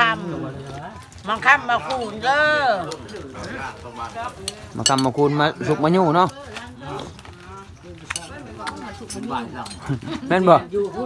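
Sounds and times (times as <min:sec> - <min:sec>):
murmured voices: 0:00.0 - 0:11.0
dishes and utensils clinking: 0:04.3 - 0:05.4, 0:08.1 - 0:10.0.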